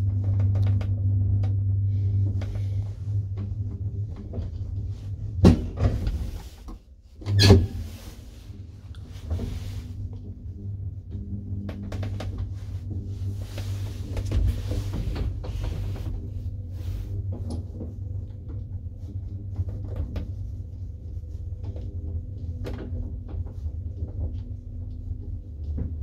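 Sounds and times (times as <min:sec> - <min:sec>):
elevator machinery humming: 0:07.3 - 0:26.0.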